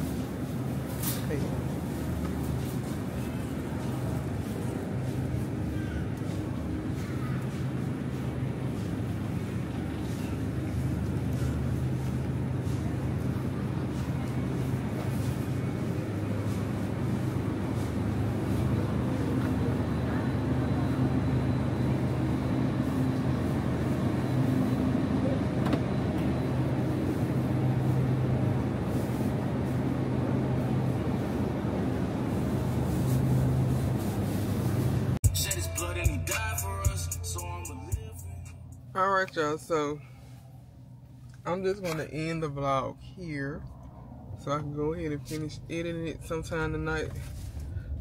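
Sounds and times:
refrigerator hum: 0.0 - 48.0.

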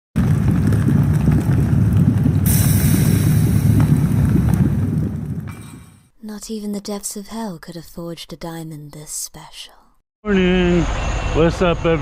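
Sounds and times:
deep rumble with crackling: 0.2 - 6.1.

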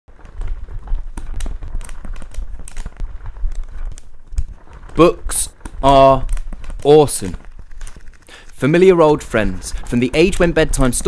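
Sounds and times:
low rumble: 0.1 - 11.0
sharp clicks and taps: 0.4 - 8.6.

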